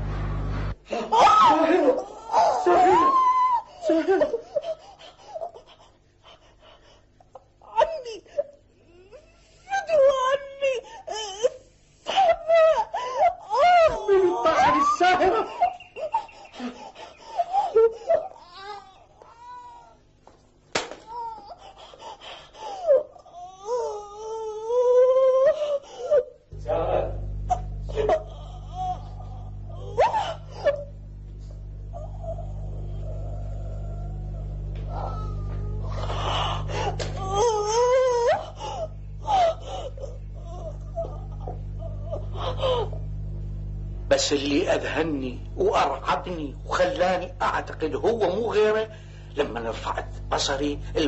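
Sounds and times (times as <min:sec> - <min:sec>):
low hum: 0:00.0 - 0:00.8, 0:26.5 - 0:51.0
woman wailing and moaning: 0:00.9 - 0:04.3, 0:27.5 - 0:31.0, 0:31.8 - 0:43.1
person sobbing and gasping: 0:00.9 - 0:18.8, 0:21.1 - 0:26.4, 0:27.5 - 0:30.9, 0:31.9 - 0:43.1.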